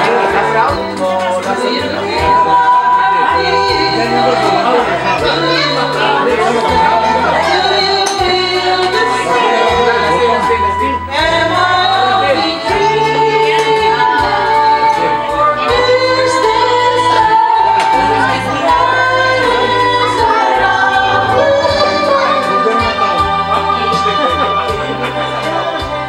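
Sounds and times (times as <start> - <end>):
instrumental backing music: 0.0 - 26.0
two women singing a duet: 0.0 - 26.0.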